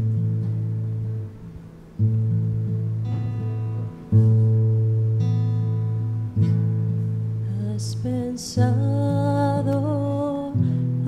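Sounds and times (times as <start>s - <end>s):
strummed guitar chords: 0.0s - 11.0s.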